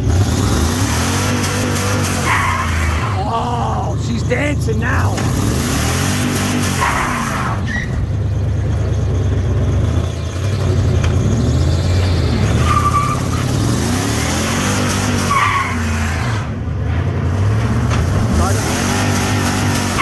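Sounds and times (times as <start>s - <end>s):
truck engine revving: 0.0s - 20.0s.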